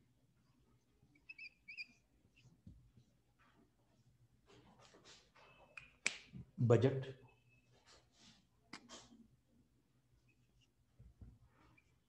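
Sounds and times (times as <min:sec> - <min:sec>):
marker squeaking on whiteboard: 0:00.4 - 0:06.0, 0:07.2 - 0:09.4, 0:10.1 - 0:12.0.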